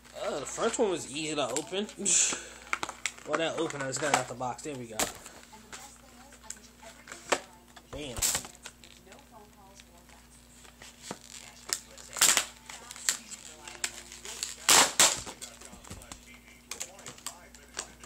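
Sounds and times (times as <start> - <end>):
plastic packaging crinkling: 0.0 - 6.2, 8.0 - 18.0.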